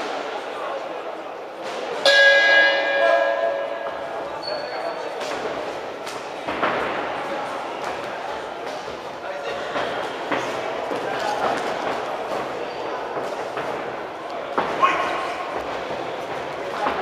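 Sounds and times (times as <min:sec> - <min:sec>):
murmur of voices: 0:00.0 - 0:17.0
boxing ring bell: 0:02.1 - 0:04.8.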